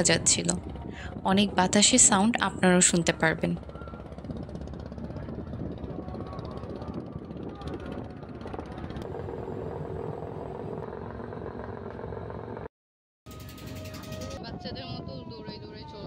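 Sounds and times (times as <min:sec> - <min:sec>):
low engine drone: 0:00.0 - 0:12.7
wind rumbling on microphone: 0:00.0 - 0:12.7, 0:13.3 - 0:16.0.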